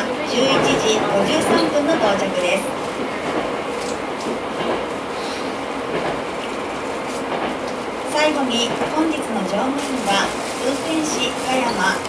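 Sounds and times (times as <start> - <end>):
railcar running noise: 0.0 - 12.0.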